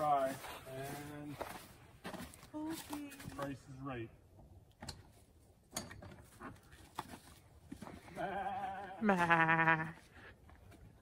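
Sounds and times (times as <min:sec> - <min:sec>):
animal bleating: 0:08.0 - 0:10.0.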